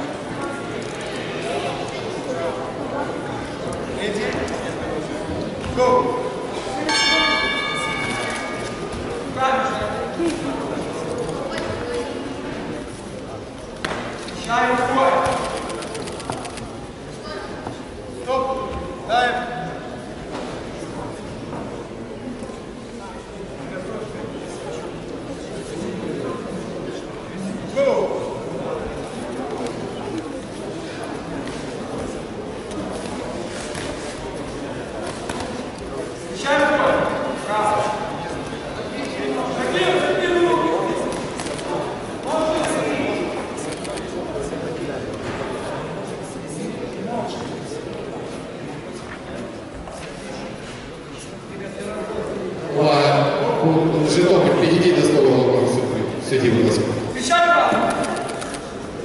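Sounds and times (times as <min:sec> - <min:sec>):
crowd murmur: 0:00.0 - 0:59.0
voices shouting in echoing hall: 0:05.7 - 0:10.3, 0:52.2 - 0:58.3.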